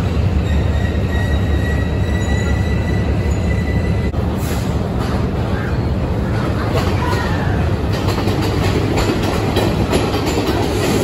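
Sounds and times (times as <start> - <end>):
train rumbling: 0.0 - 11.0
high wheel squeal: 0.4 - 4.1.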